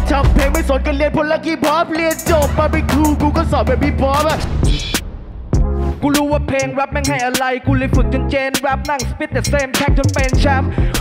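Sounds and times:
rapping over a hip hop beat: 0.0s - 5.0s, 5.9s - 11.0s.

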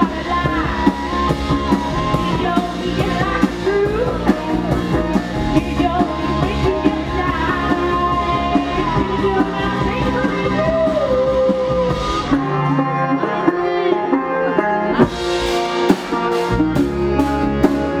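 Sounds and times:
woman singing: 0.0s - 15.1s
live band playing: 0.0s - 18.0s.

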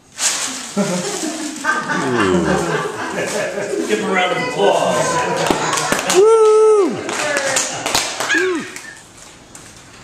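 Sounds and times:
voiced exclamation: 8.3s - 9.0s.

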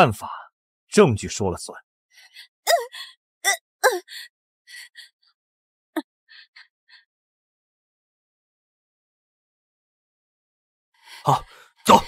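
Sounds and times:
woman crying out and gasping: 2.4s - 5.1s.

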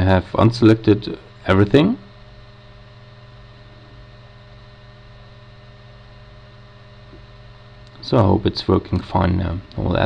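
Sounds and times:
low electrical hum with hiss: 0.0s - 10.0s.

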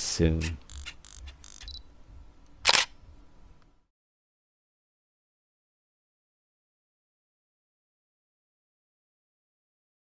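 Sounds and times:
camera shutter clicks: 0.4s - 1.8s, 2.6s - 3.0s
loud shutter click: 2.6s - 3.0s.

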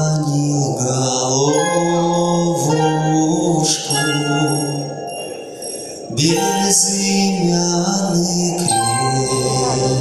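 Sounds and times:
man singing into a microphone: 0.0s - 5.0s, 5.9s - 10.0s
musical accompaniment through loudspeakers: 0.0s - 10.0s.

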